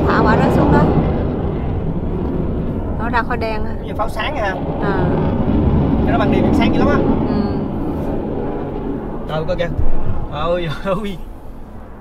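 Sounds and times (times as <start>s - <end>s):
people talking: 0.0s - 1.0s, 3.0s - 5.3s, 6.1s - 7.7s, 9.3s - 11.2s
car rumbling along road: 0.0s - 12.0s.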